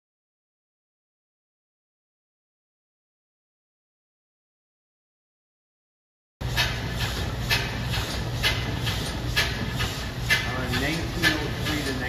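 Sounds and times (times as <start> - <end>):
lathe and line shaft hum: 6.4 - 12.0.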